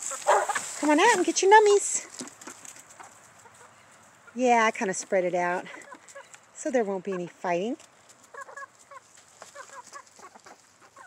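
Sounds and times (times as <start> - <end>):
chickens clucking softly: 8.3 - 11.0.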